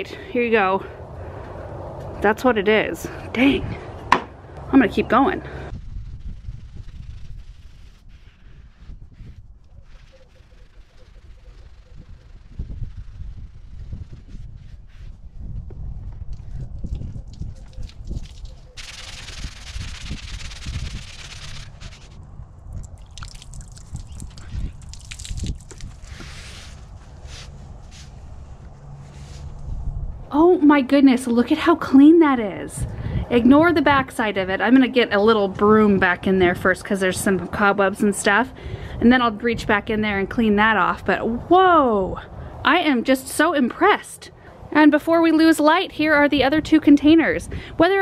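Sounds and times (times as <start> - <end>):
water pouring and splashing: 22.7 - 26.9.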